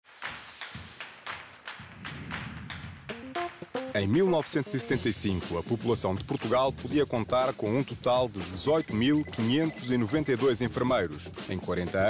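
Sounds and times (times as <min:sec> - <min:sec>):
crisp percussion beat: 0:00.1 - 0:12.0
quick stepped melody: 0:00.2 - 0:11.0.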